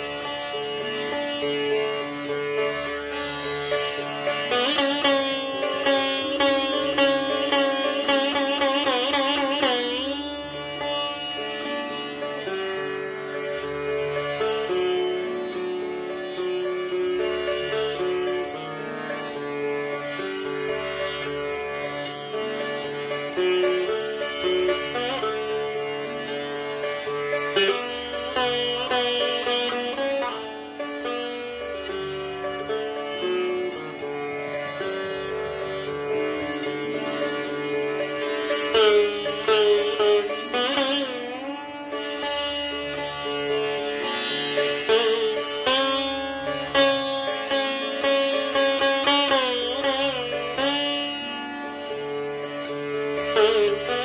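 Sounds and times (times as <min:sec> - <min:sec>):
sitar playing: 0:00.0 - 0:54.0.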